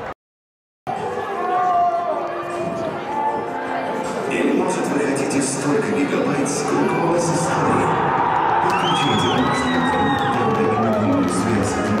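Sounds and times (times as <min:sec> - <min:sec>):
group cheering and shouting: 0:00.9 - 0:04.0, 0:06.8 - 0:12.0.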